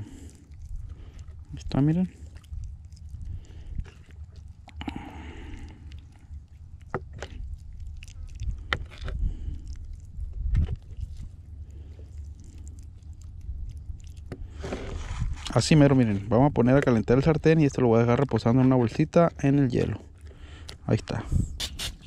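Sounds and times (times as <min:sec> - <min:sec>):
wind rumble on microphone: 0:07.2 - 0:11.5, 0:13.2 - 0:17.6, 0:21.1 - 0:22.0.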